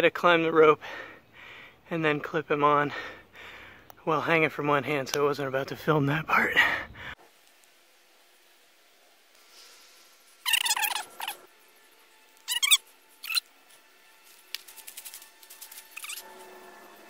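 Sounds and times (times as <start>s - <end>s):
robot drive squeaking: 10.5s - 11.5s, 12.5s - 13.4s
fast run of clicks: 14.5s - 16.2s.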